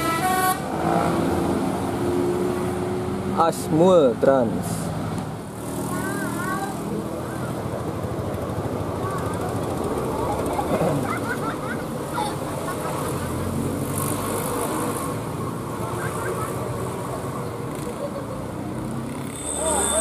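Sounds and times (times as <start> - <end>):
buses driving past: 0.0 - 20.0
voices calling out: 5.8 - 20.0.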